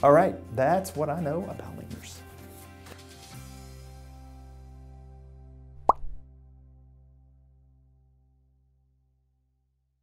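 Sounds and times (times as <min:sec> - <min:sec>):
upward sweeping pop effect: 0:05.8 - 0:06.2.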